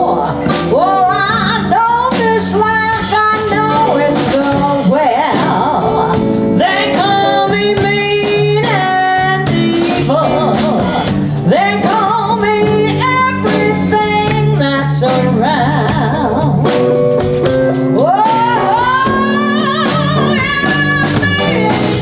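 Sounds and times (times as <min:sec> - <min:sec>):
woman singing: 0:00.0 - 0:17.0, 0:17.8 - 0:22.0
drums: 0:00.0 - 0:22.0
electric guitars: 0:00.0 - 0:22.0.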